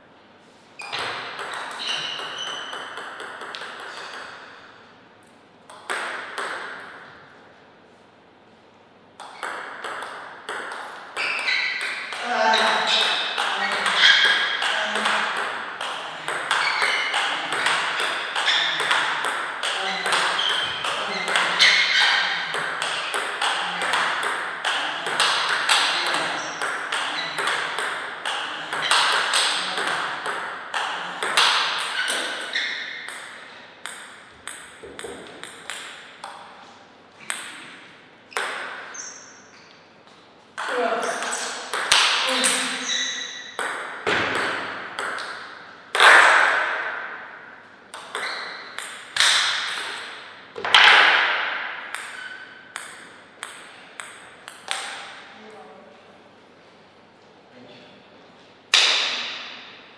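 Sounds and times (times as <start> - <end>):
table tennis ball clicking: 1.0 - 4.3.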